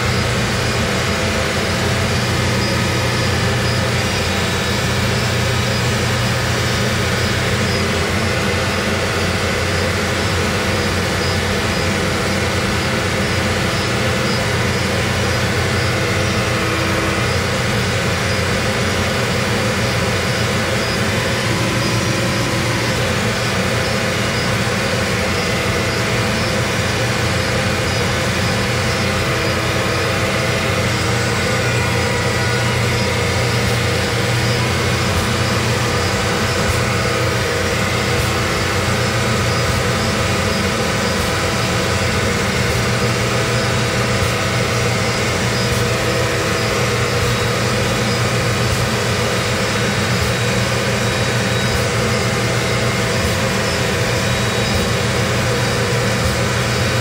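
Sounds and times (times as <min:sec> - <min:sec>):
heavy machine engine running: 0:00.0 - 0:57.0.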